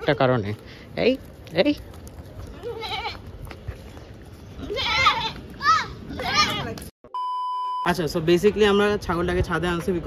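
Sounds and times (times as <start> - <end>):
goat bleating: 2.5 - 3.3, 4.6 - 5.4.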